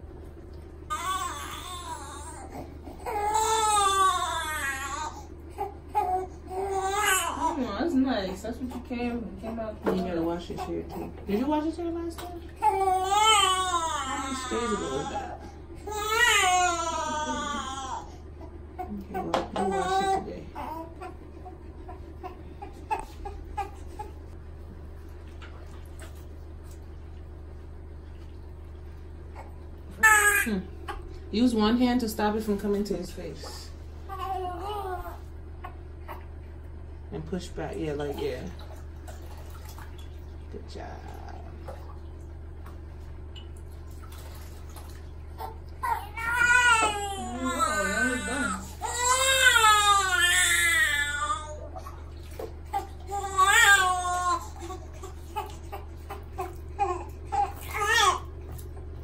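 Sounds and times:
steady low hum: 0.0 - 59.0
newborn baby crying: 0.9 - 7.6, 12.6 - 18.5, 19.6 - 21.2, 34.1 - 36.2, 45.4 - 51.8, 52.7 - 58.2
newborn baby whimpering: 0.9 - 7.6, 12.6 - 18.1, 19.6 - 24.2.

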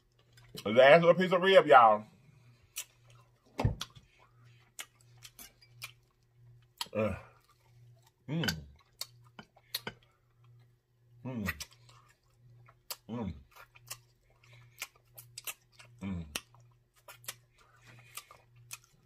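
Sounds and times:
faint low hum: 0.0 - 19.0
chewing and wet lip-smacking: 2.6 - 10.8, 11.5 - 19.0
person humming mm: 8.3 - 8.7, 11.2 - 11.6, 13.1 - 13.4, 16.0 - 16.4.

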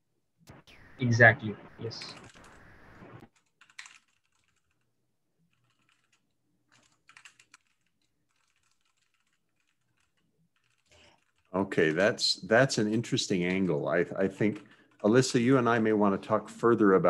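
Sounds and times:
faint keyboard typing: 1.8 - 17.0.

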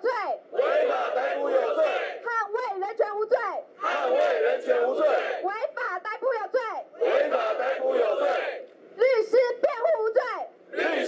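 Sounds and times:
crowd chanting a slogan: 0.0 - 2.3, 3.8 - 5.5, 7.0 - 8.7, 10.7 - 11.0.

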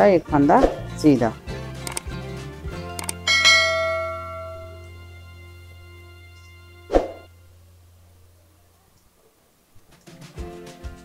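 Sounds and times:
bell ringing: 3.0 - 5.3
steady low hum: 3.0 - 9.1.

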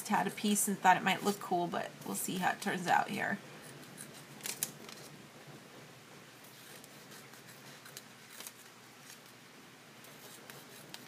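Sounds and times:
scissors cutting paper: 6.7 - 9.2, 10.1 - 11.0.

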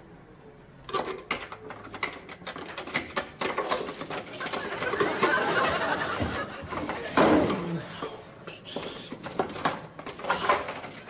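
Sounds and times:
rapid irregular clicking and clattering: 0.9 - 7.7, 8.8 - 11.0.

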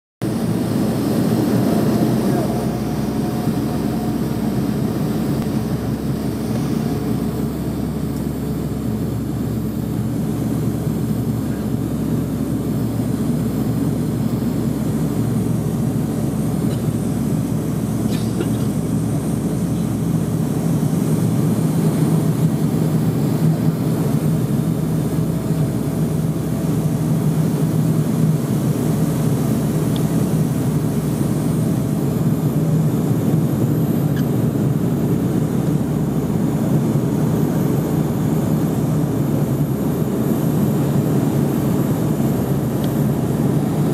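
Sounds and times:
turboprop engine drone in cabin: 0.2 - 43.9.

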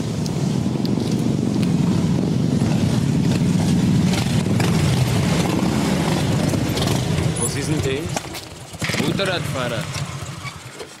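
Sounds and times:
motorcycle engines rumbling: 0.0 - 11.0.

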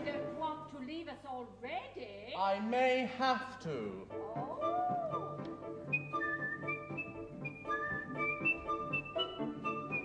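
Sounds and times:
opera orchestra playing: 4.1 - 10.0.

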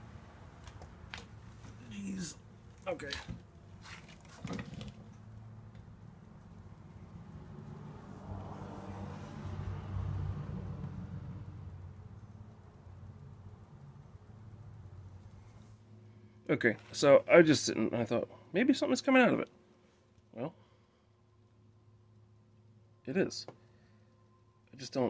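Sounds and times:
vehicle passing by: 5.3 - 15.8
faint steady hum: 11.3 - 25.0.

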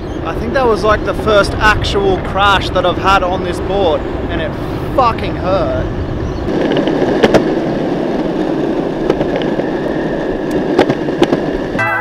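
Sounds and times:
skateboard wheels rumbling on pavement: 0.0 - 12.0
wheels clicking over cracks: 6.5 - 11.8
music: 11.8 - 12.0.

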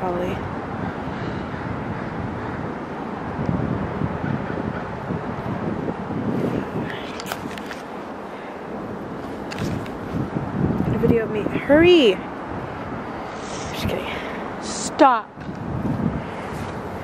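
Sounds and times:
distant vehicles: 0.0 - 17.0
wind: 0.0 - 17.0
camera handling clicks: 7.0 - 7.9.

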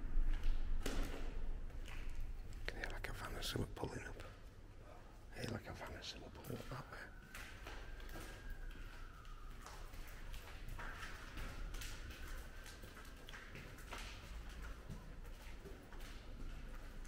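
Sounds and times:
footsteps on concrete floor: 6.5 - 17.0.

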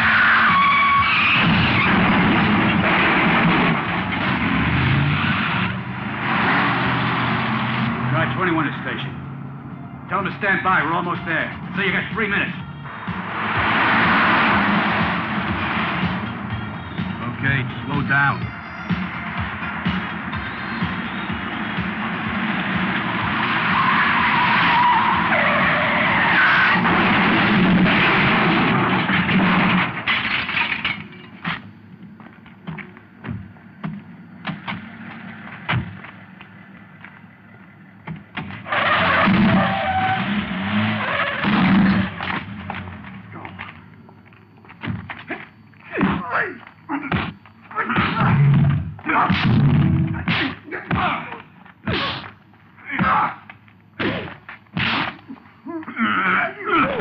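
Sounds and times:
car engines racing: 0.0 - 30.1, 31.6 - 45.7
tyres skidding on road: 0.0 - 31.6, 33.6 - 44.1.

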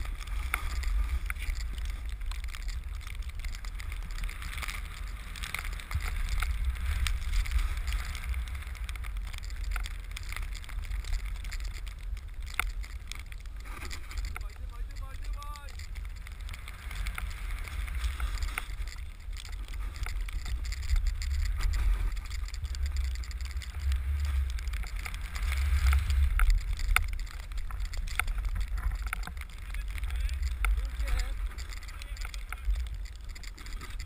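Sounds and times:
board sliding through powder snow: 0.0 - 34.0.

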